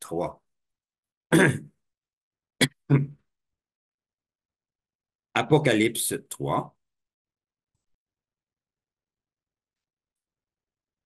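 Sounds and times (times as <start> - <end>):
man clearing throat: 1.3 - 1.8, 2.6 - 3.2
man coughing: 1.3 - 1.8.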